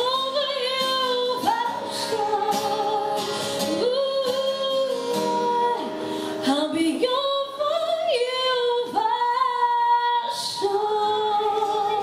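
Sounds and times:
acoustic guitar: 0:00.0 - 0:12.0
woman singing a country song: 0:00.0 - 0:12.0.

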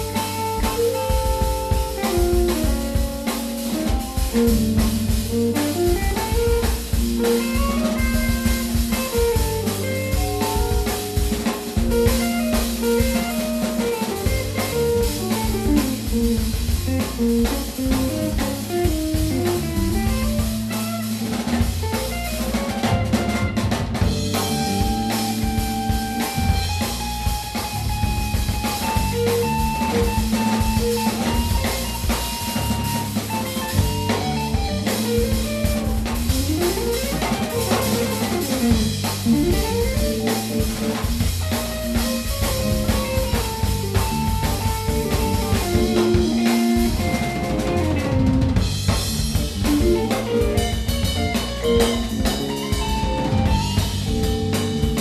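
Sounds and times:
live band playing: 0:00.0 - 0:55.0
sustained lead notes: 0:00.0 - 0:55.0.

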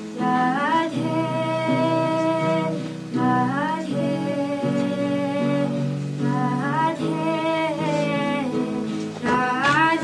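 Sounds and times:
acoustic guitar: 0:00.0 - 0:10.0
person singing long notes: 0:00.1 - 0:10.0.

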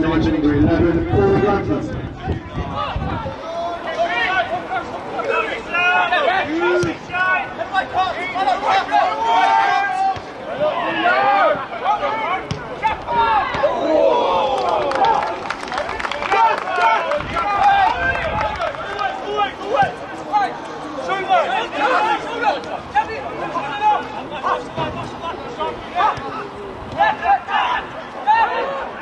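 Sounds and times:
crowd chatter: 0:00.0 - 0:29.0
voices shouting and calling out: 0:00.0 - 0:29.0.

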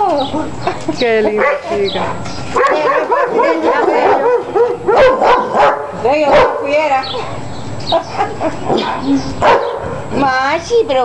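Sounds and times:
dog barking: 0:01.4 - 0:01.8, 0:02.6 - 0:06.8, 0:07.9 - 0:10.0.

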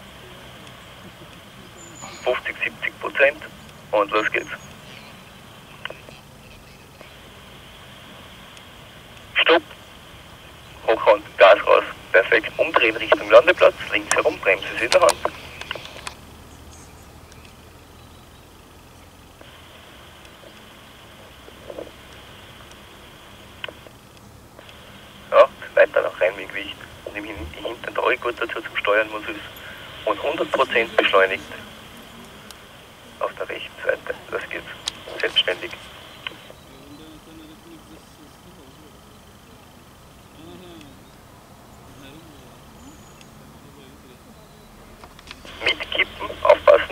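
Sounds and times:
faint background hum: 0:00.0 - 0:46.9
two-way radio hiss: 0:00.0 - 0:46.9
radio click: 0:00.5 - 0:05.1, 0:05.7 - 0:06.3, 0:07.0 - 0:16.2, 0:19.4 - 0:36.7, 0:45.0 - 0:46.9.

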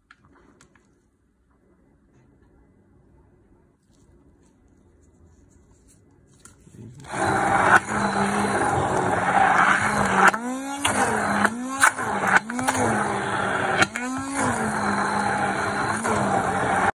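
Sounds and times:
stick blender running: 0:07.0 - 0:17.0.

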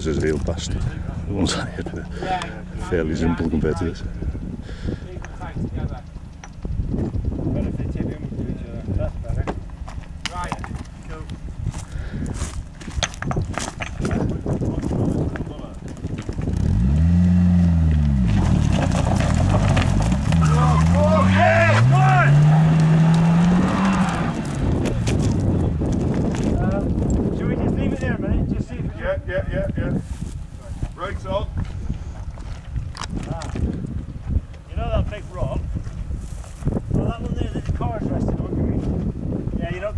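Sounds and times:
wheels spinning in sand and gravel: 0:10.0 - 0:17.2, 0:17.8 - 0:28.0
car engine revving hard: 0:16.6 - 0:25.0.

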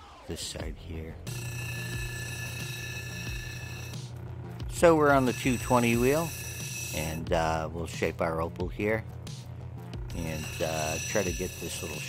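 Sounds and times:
grinding machine motor hum: 0:01.2 - 0:07.6, 0:09.9 - 0:12.0
high-pitched whine: 0:01.3 - 0:07.3, 0:10.1 - 0:12.0.

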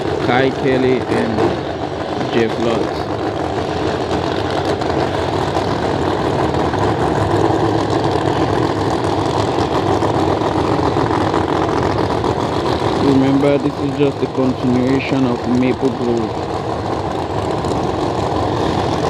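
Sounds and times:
race car engines idling: 0:00.0 - 0:19.0.

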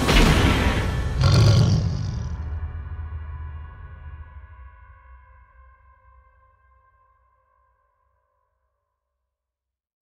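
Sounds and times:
heavy boom impact: 0:00.4 - 0:02.6.

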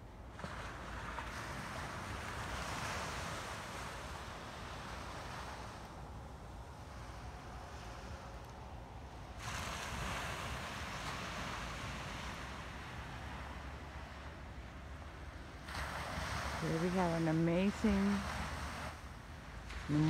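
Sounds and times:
ocean waves washing onto beach: 0:00.0 - 0:20.0
wind rumble on microphone: 0:00.0 - 0:20.0.

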